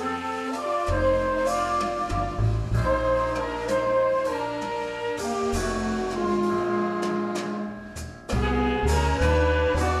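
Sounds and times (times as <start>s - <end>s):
flute line: 0.0s - 10.0s
jazz big band playing: 0.0s - 10.0s.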